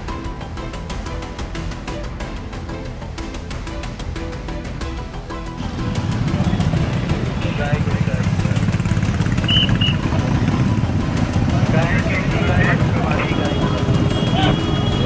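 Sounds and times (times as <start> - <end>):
motorcycle engines idling: 5.5 - 15.0
people's voices: 5.6 - 15.0.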